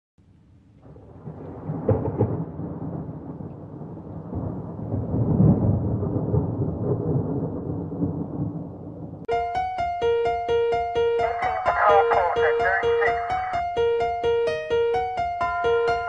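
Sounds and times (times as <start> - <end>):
rumbling thunder: 0.8 - 9.3
thunder cracks: 0.8 - 9.3.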